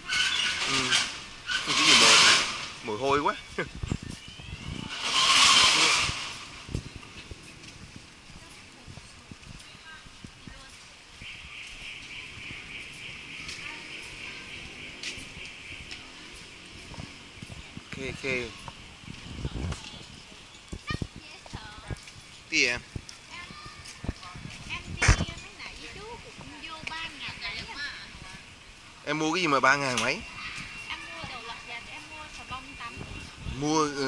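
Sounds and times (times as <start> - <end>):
vehicle passing with rushing hiss: 0.0 - 3.2, 4.9 - 8.2, 11.3 - 19.6
faint distant voices: 0.0 - 34.0
street background: 0.0 - 34.0.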